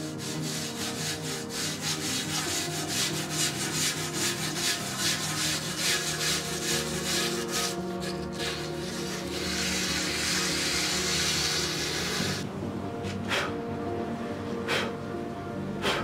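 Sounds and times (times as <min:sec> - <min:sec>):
sanding pot rim by hand: 0:00.0 - 0:12.4
music: 0:00.0 - 0:16.0.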